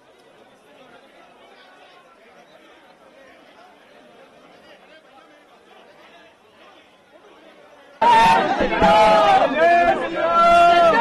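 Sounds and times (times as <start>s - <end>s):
muffled crowd chatter: 0.0s - 11.0s
men shouting: 8.0s - 11.0s.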